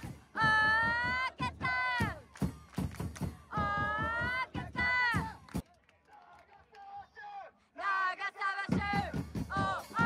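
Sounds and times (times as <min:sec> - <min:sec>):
drum beats: 0:00.0 - 0:05.6, 0:08.6 - 0:10.0
supporters chanting: 0:03.2 - 0:05.4, 0:06.2 - 0:10.0.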